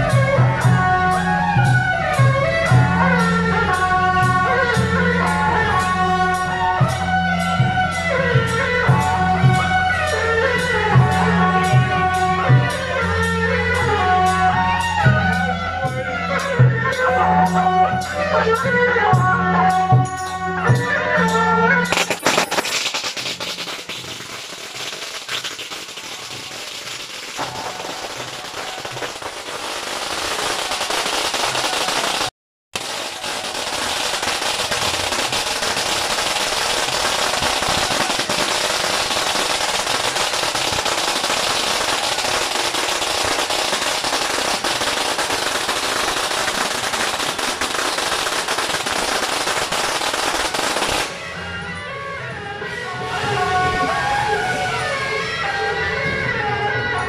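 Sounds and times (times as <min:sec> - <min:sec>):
firecrackers crackling: 0:21.8 - 0:51.4.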